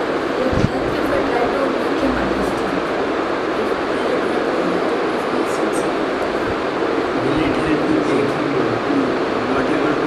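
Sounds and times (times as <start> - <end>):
faint voices: 0.0 - 10.0
loud background noise: 0.0 - 10.0.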